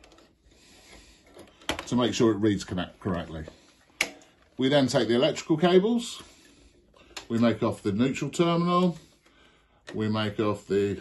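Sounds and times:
person speaking: 0:01.7 - 0:03.6, 0:04.6 - 0:06.4, 0:07.2 - 0:09.1, 0:09.9 - 0:11.0.

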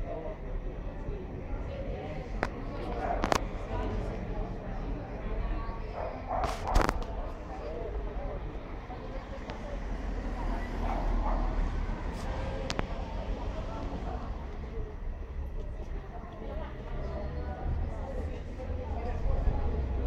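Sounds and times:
distant voices: 0:00.0 - 0:20.0
low rumble of street background: 0:00.0 - 0:20.0.

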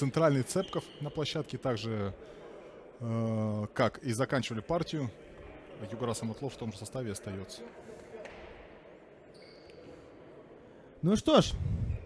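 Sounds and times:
indoor hall background noise: 0:00.0 - 0:12.0.

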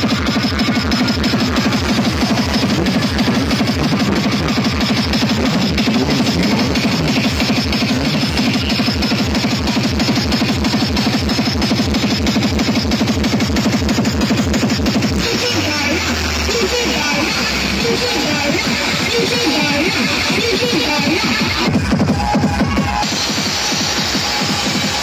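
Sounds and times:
electronic dance music: 0:00.0 - 0:25.0.

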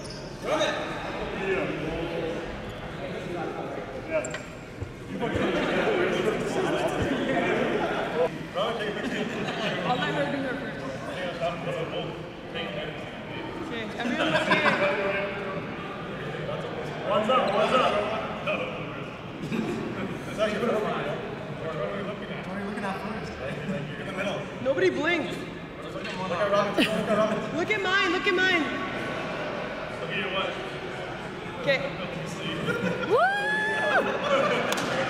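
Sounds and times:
people talking in background: 0:00.0 - 0:35.0
group of men chatting: 0:00.4 - 0:35.0.

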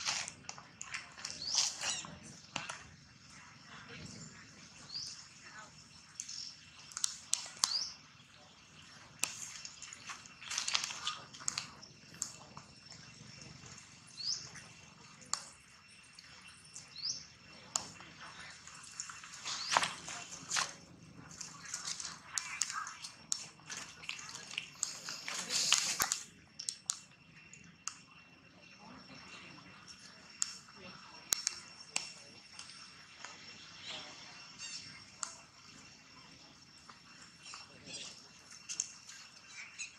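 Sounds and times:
dry leaves rustling and crackling: 0:10.1 - 0:11.1.

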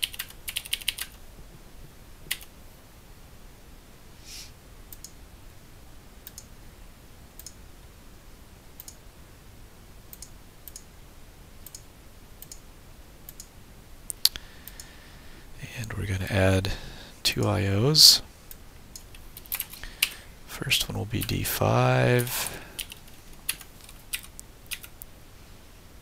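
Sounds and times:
computer mouse clicks: 0:04.9 - 0:05.2, 0:06.2 - 0:06.5, 0:07.4 - 0:07.6, 0:08.8 - 0:09.0, 0:10.1 - 0:10.9, 0:11.6 - 0:12.6, 0:13.3 - 0:13.5, 0:14.1 - 0:14.9.

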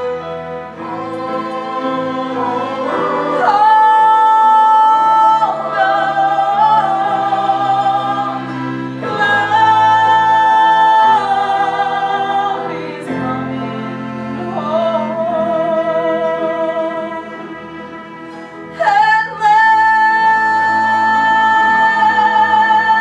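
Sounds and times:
instrumental accompaniment: 0:00.0 - 0:23.0
woman singing: 0:01.0 - 0:08.4, 0:18.7 - 0:23.0.

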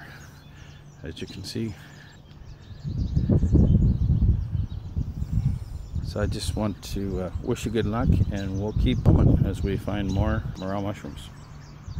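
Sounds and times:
faint bird chirps: 0:00.0 - 0:11.9.

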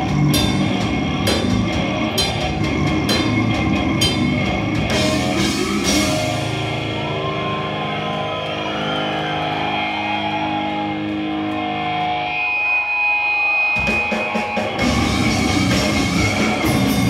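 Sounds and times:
death metal band playing live: 0:00.0 - 0:17.0
drums: 0:00.0 - 0:17.0.

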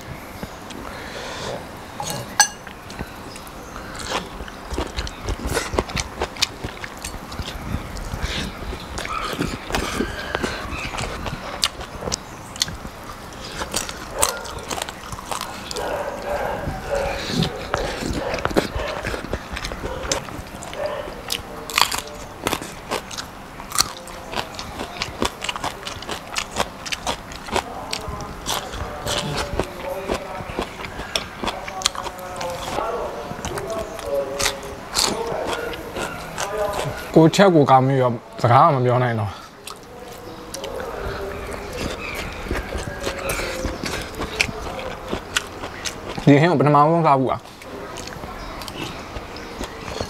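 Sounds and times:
person chewing crunchy food: 0:00.0 - 0:37.3, 0:39.4 - 0:46.5, 0:47.4 - 0:50.0.

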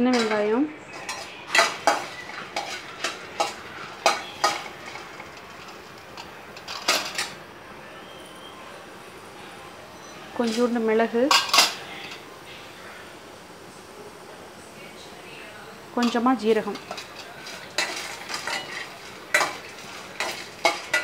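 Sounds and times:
metal spoon scraping a steel pan: 0:00.0 - 0:05.0, 0:16.0 - 0:21.0.

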